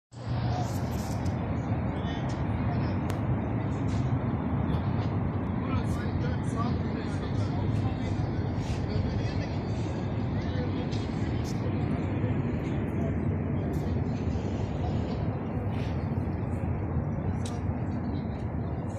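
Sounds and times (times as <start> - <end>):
road traffic: 0.1 - 18.9
voices of people: 0.1 - 18.9.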